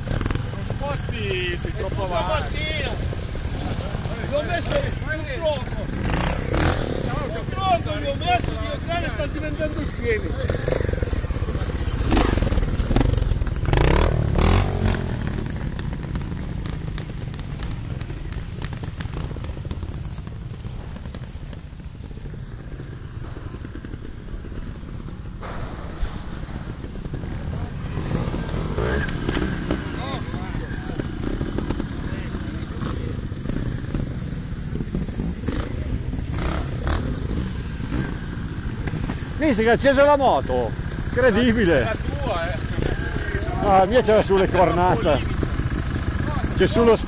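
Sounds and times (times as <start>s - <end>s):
motorcycle engine at low revs: 0.0s - 47.0s.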